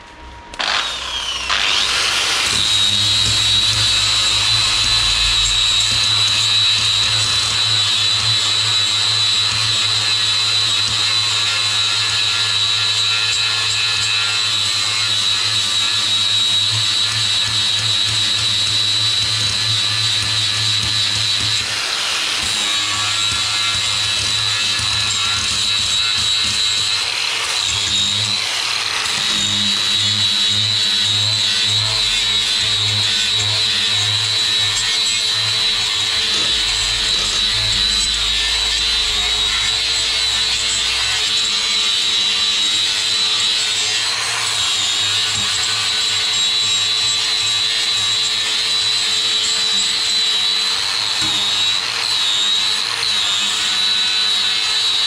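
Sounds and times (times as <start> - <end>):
angle grinder whining: 0.0 - 55.0.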